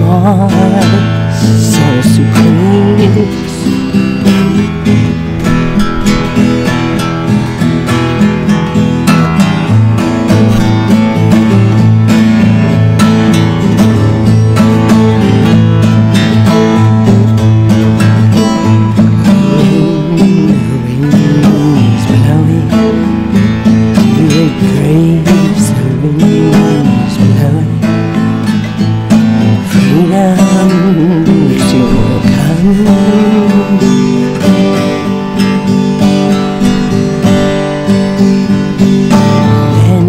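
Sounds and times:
person singing wordless melody: 0.0s - 5.0s, 18.8s - 28.4s, 29.6s - 37.0s, 39.1s - 40.0s
acoustic guitar accompaniment: 0.0s - 40.0s.

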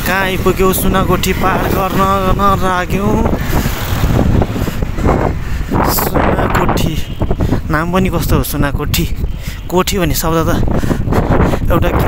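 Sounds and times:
street traffic: 0.0s - 12.0s
wind buffeting microphone: 0.0s - 12.0s.

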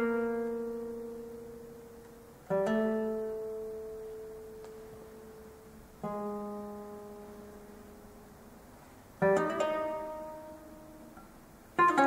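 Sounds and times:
classical guitar note ringing: 0.0s - 8.5s, 9.2s - 12.0s
faint tick: 2.0s - 2.2s, 4.6s - 4.9s.

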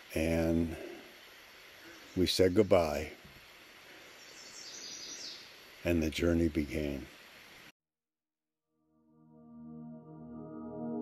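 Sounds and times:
low steady outdoor hiss: 0.0s - 7.7s
faint high bird chirps: 4.0s - 5.6s.

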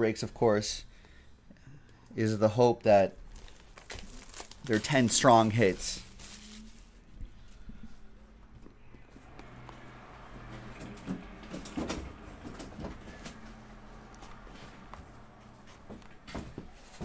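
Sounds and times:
low steady hum: 0.2s - 17.0s.

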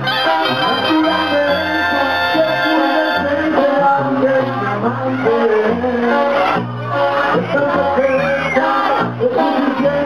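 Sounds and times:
loud live band instrumental: 0.0s - 10.0s.

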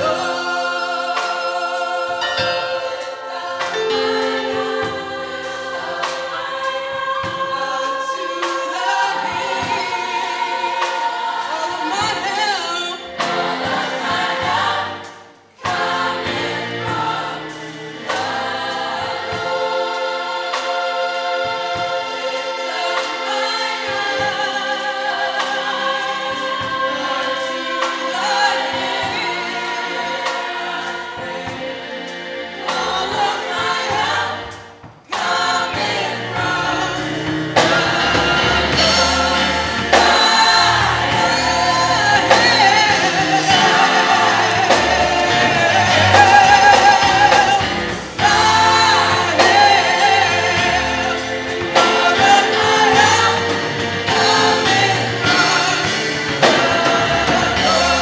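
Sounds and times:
gospel choir singing: 0.0s - 58.0s.

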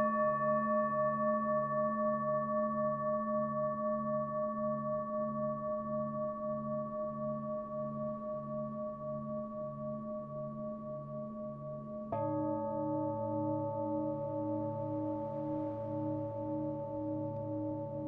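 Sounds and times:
singing bowl ringing: 11.5s - 18.0s.

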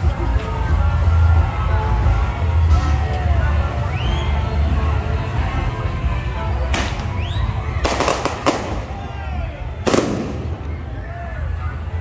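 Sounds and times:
crowd voices: 0.0s - 12.0s
music: 0.0s - 12.0s
firecrackers banging: 7.8s - 9.2s, 9.8s - 11.0s.

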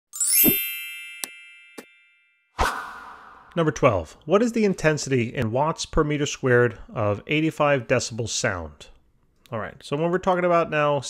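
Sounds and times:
bright bell-like chime: 0.1s - 2.6s.

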